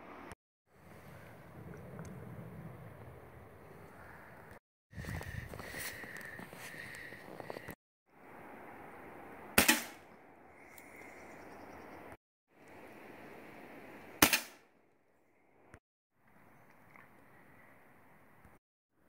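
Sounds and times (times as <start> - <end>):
pellet gun shots: 9.6 - 10.0, 14.2 - 14.6.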